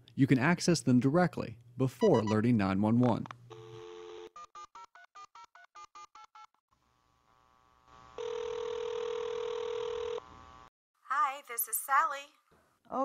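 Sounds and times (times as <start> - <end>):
telephone ringback tone: 3.5 - 4.7, 8.2 - 10.3.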